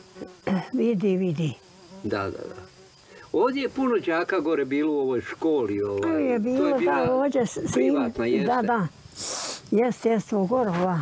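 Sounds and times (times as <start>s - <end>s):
insect buzzing: 0.0s - 11.0s
person speaking: 5.9s - 8.8s.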